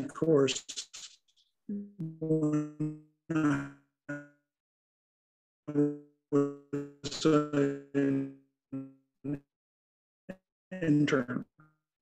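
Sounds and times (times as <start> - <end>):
man grunting: 3.3 - 3.6, 7.1 - 8.2.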